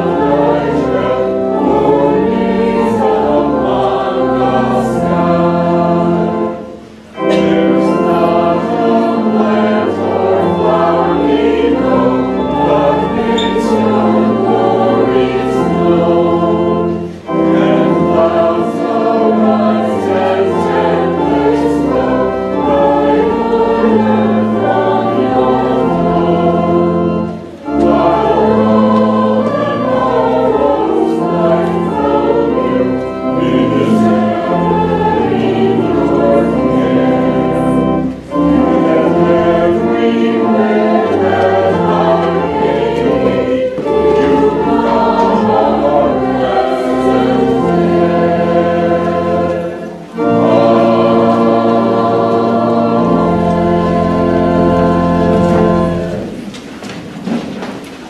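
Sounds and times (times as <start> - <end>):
women singing a hymn in unison: 0.0 - 56.4
organ chords: 0.0 - 58.0.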